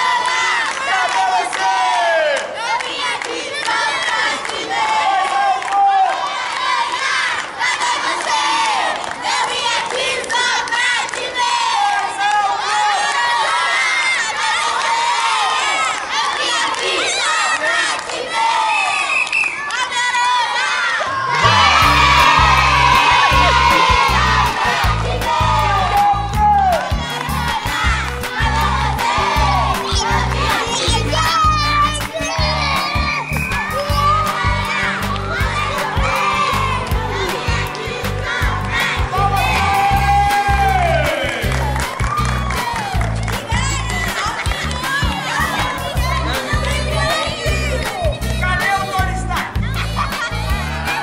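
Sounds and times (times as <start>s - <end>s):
children shouting and cheering: 0.0s - 51.0s
music with pulsing bass beat: 21.4s - 51.0s.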